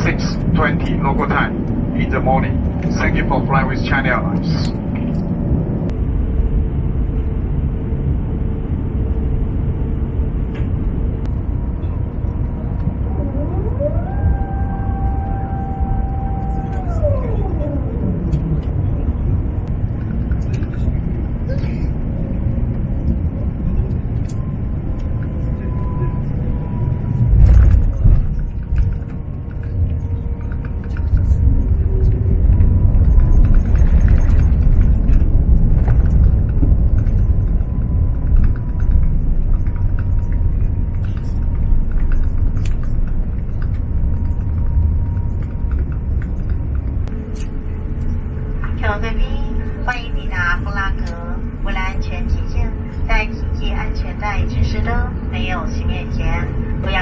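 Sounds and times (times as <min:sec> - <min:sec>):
aircraft rolling out rumble: 0:00.0 - 0:57.0
jet engines and airflow rumble: 0:00.0 - 0:57.0
rising and falling whine: 0:00.0 - 0:57.0.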